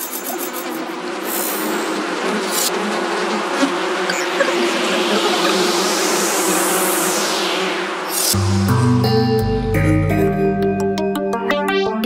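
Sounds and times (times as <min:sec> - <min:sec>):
buzzing electronic texture: 0:00.0 - 0:09.6
hissing filter sweep: 0:03.7 - 0:09.2.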